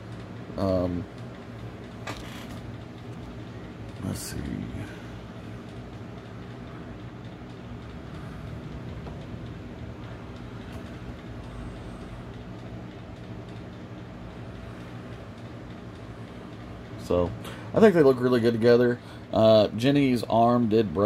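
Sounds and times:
machine drone hum: 0:00.0 - 0:21.0.

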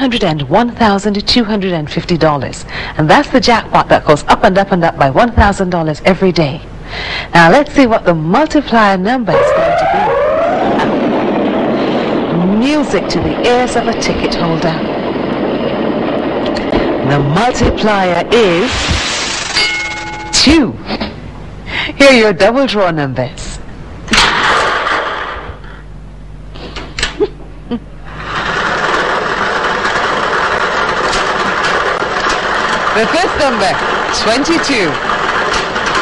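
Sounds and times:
lottery draw machine rushing: 0:08.8 - 0:20.8, 0:28.0 - 0:36.0
blower noise: 0:08.9 - 0:22.0, 0:26.5 - 0:36.0
balls rattling in drum: 0:28.1 - 0:36.0.

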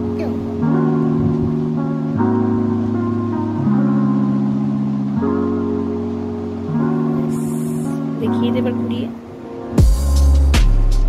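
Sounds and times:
sustained chords music: 0:00.0 - 0:11.0.

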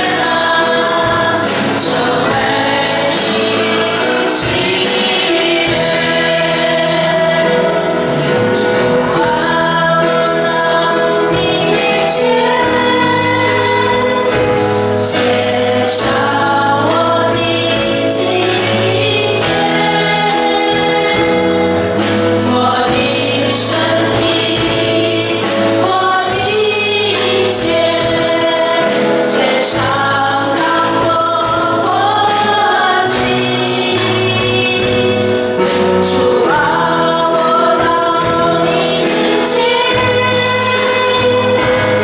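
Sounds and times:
group singing worship song: 0:00.0 - 0:42.0
instrumental accompaniment: 0:00.0 - 0:42.0.

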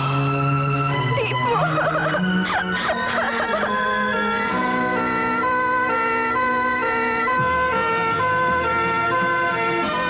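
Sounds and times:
ambulance siren two-tone wail: 0:00.0 - 0:10.0.

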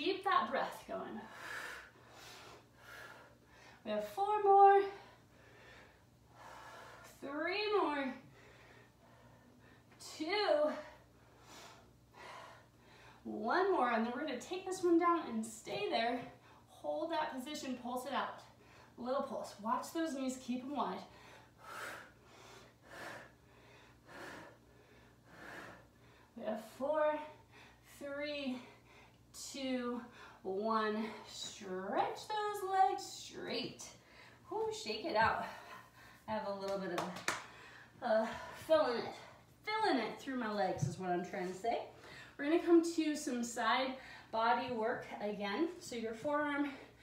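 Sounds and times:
woman speaking: 0:00.0 - 0:01.2, 0:03.9 - 0:05.0, 0:29.5 - 0:33.9, 0:34.5 - 0:35.6, 0:36.3 - 0:37.3, 0:38.0 - 0:46.8
woman breathing hard: 0:05.0 - 0:07.1, 0:08.2 - 0:09.9, 0:21.1 - 0:26.4.

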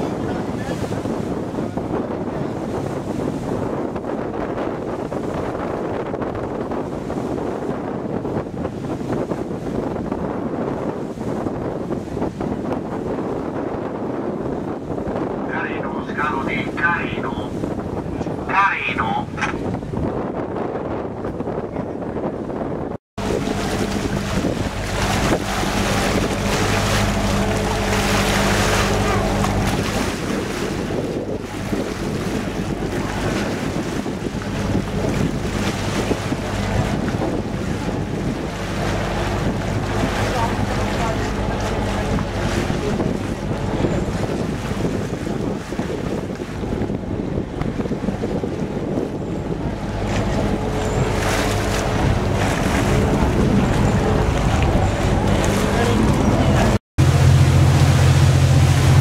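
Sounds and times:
boat engine hum: 0:00.0 - 0:59.0
water rushing past hull: 0:00.0 - 0:59.0
wind buffeting microphone: 0:00.0 - 0:59.0.

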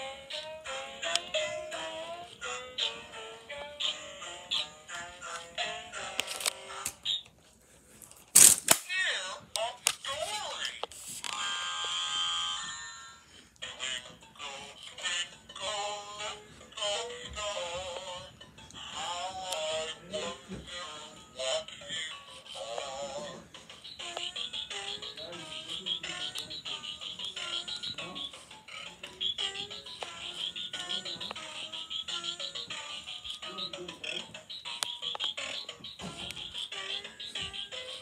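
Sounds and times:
toy speaker playing warbling song: 0:11.2 - 0:13.1, 0:18.8 - 0:38.0.

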